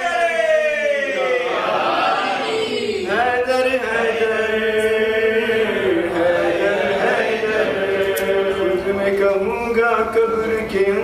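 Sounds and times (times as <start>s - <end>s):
man chanting: 3.0s - 11.0s.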